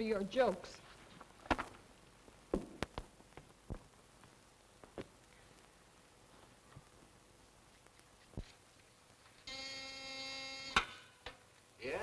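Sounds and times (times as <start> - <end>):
electric buzzer: 9.4 - 11.0.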